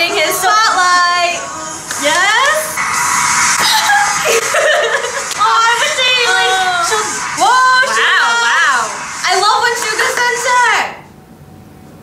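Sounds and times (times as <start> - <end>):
high-pitched squealing: 0.0 - 10.9
pop dance track: 0.0 - 11.0
laughter: 3.8 - 5.4.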